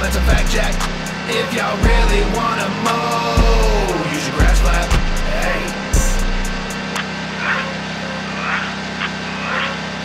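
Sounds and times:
lawn mower engine running: 0:00.0 - 0:10.0.

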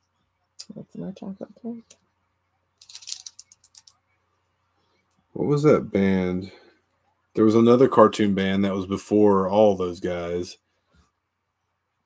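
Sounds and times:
rattle of sharp clicks: 0:02.8 - 0:04.0.

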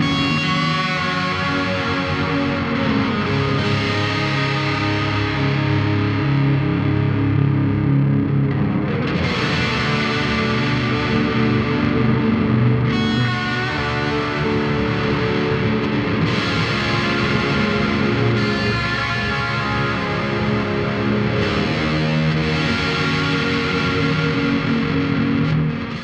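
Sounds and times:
overdriven electric guitar with delay: 0:00.0 - 0:26.0.

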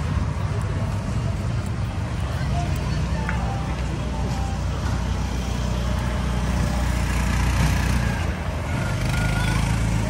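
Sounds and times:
faint voices: 0:00.0 - 0:07.2, 0:07.8 - 0:10.0.

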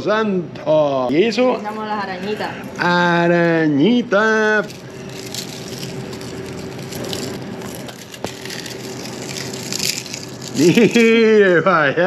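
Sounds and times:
fried plantain crackling and crunching: 0:04.5 - 0:11.4.

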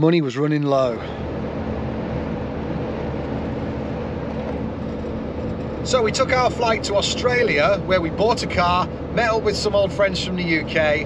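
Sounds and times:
road and engine noise: 0:00.0 - 0:11.0.

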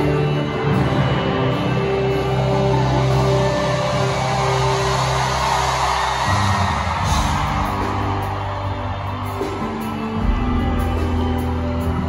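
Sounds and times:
live band music: 0:06.9 - 0:12.0.

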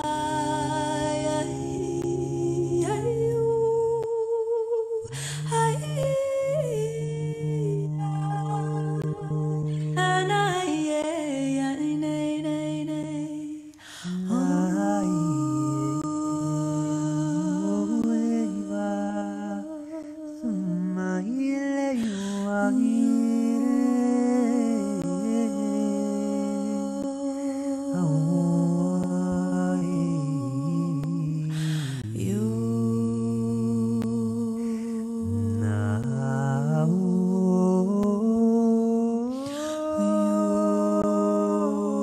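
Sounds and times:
man humming low: 0:00.0 - 0:04.0, 0:14.0 - 0:42.0.

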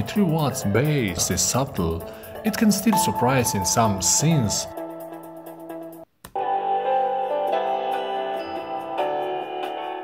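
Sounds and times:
guitar music through laptop speakers: 0:02.7 - 0:10.0.

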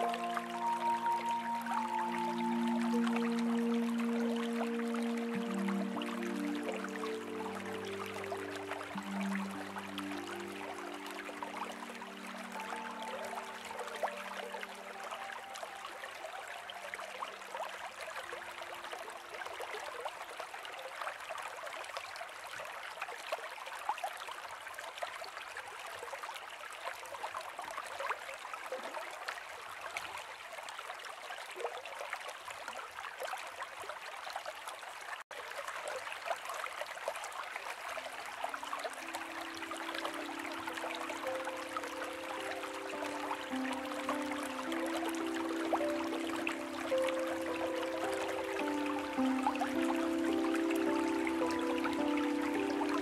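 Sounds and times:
soft held musical chords: 0:00.0 - 0:17.2, 0:38.6 - 0:53.0
trickling stream: 0:00.0 - 0:53.0.

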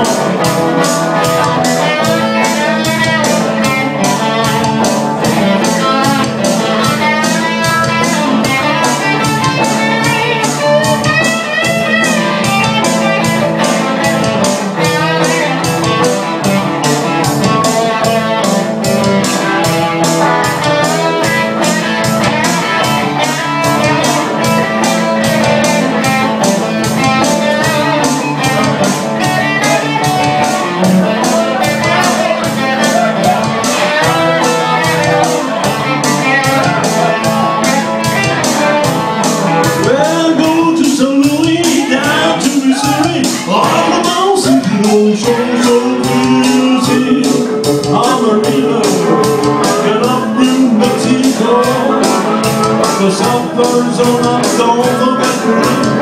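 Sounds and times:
electric guitar lead lines: 0:00.0 - 0:56.0
steady beat: 0:00.0 - 0:56.0
strummed rhythm guitar: 0:00.0 - 0:56.0.

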